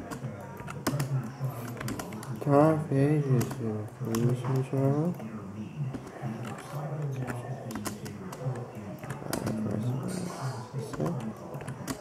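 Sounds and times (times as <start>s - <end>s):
typing on computer keyboard: 0.0s - 2.6s, 3.3s - 5.2s, 5.9s - 9.9s, 10.8s - 12.0s.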